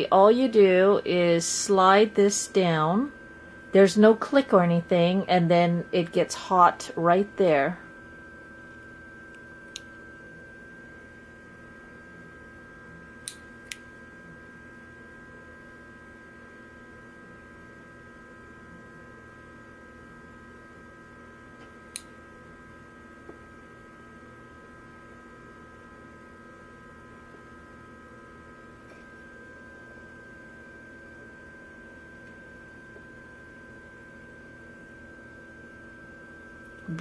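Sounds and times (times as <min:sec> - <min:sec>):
faint electrical hum: 0:00.0 - 0:37.0.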